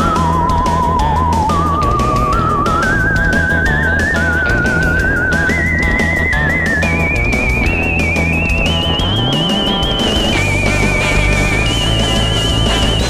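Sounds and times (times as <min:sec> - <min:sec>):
music with wavering lead melody: 0:00.0 - 0:13.0.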